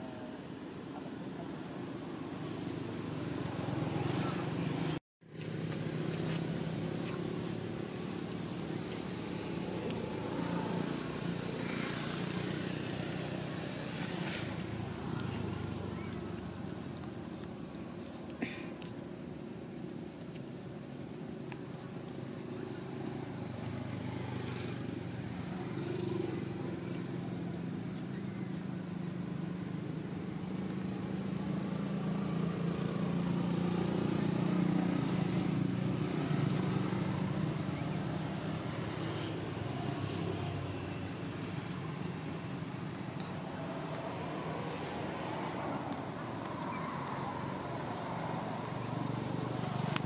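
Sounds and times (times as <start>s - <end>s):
vehicle engine humming: 0.8s - 50.0s.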